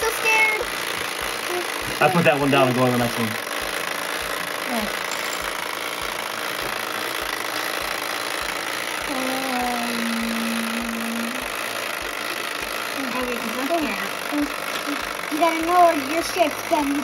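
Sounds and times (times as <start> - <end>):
wind-up timer ticking: 0.0 - 17.0
person humming a note: 9.1 - 11.5.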